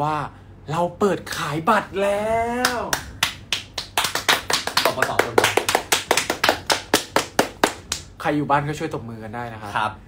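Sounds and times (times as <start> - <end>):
people clapping hands: 2.6 - 8.2.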